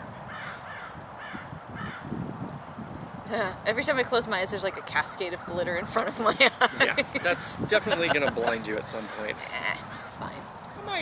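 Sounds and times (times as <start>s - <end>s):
bird calling: 4.7s - 11.0s.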